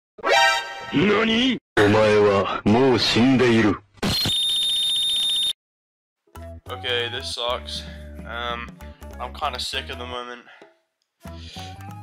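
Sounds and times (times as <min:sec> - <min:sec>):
shrill alarm-like beep: 0:04.2 - 0:05.6.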